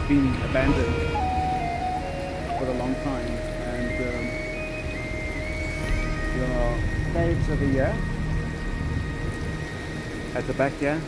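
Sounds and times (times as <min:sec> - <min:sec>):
faint held music notes: 0:00.0 - 0:11.0
wind buffeting microphone: 0:00.0 - 0:11.0.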